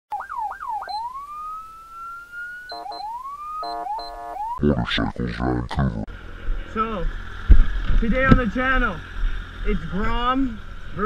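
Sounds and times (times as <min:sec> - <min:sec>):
electronic siren whooping and wailing: 0:00.1 - 0:06.0.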